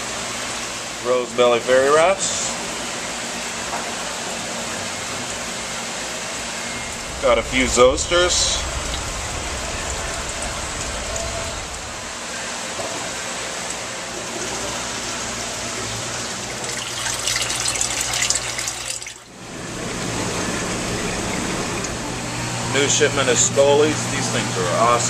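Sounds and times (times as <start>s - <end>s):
low machine hum: 5.0s - 13.7s, 19.3s - 25.0s
water running and splashing: 16.0s - 19.3s.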